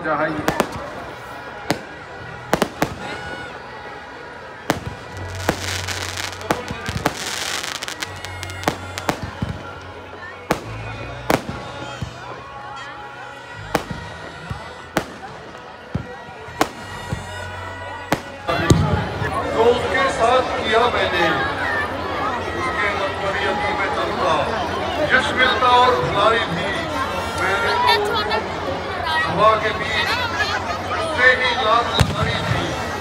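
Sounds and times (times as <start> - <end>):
crowd voices: 0.0 - 33.0
fireworks bangs: 0.4 - 3.7, 4.6 - 12.4, 13.7 - 19.3, 31.9 - 33.0
fireworks crackling hiss: 4.7 - 9.8.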